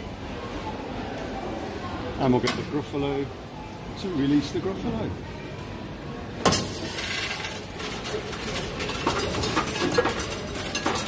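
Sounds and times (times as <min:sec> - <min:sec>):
coins clacking into machine: 0:06.5 - 0:11.0
coins clinking: 0:06.6 - 0:11.0.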